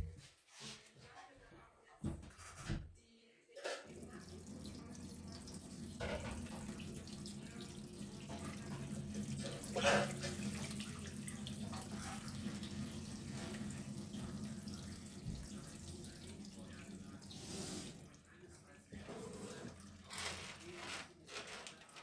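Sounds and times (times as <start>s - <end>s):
water pouring into a sink: 3.8s - 20.8s.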